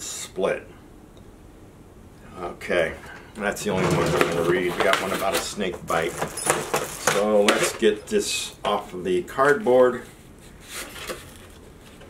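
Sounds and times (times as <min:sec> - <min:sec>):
cardboard packaging rustling: 0:03.7 - 0:08.0, 0:10.4 - 0:12.0.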